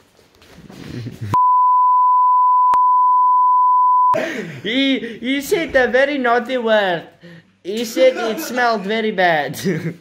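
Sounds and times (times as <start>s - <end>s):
censor bleep: 1.4s - 4.2s.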